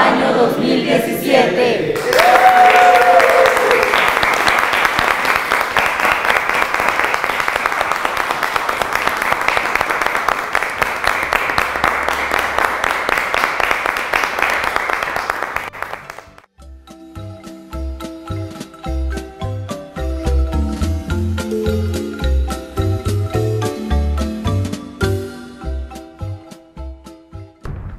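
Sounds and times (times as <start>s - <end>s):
group of people clapping: 1.9s - 16.5s.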